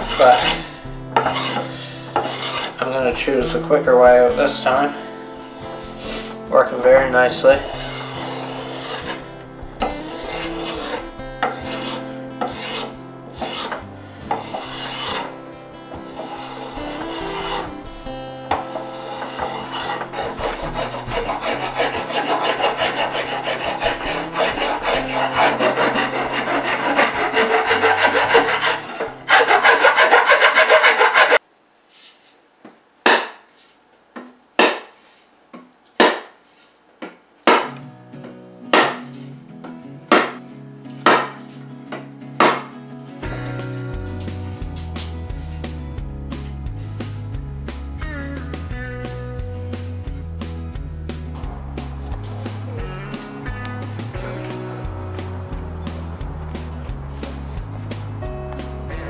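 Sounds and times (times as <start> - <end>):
spokeshave scraping wood: 0.0 - 3.7, 5.7 - 17.9, 18.5 - 32.4, 51.1 - 58.2
background music: 0.0 - 31.4, 37.6 - 59.0
mallet striking wood: 33.0 - 33.4, 34.2 - 34.9, 36.0 - 36.3, 37.0 - 37.8, 38.8 - 39.0, 40.1 - 40.4, 41.1 - 41.4, 42.4 - 42.7.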